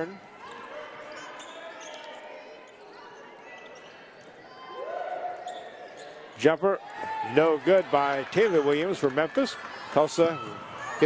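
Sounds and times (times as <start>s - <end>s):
sneaker squeaks: 0.4s - 4.5s, 5.3s - 7.2s.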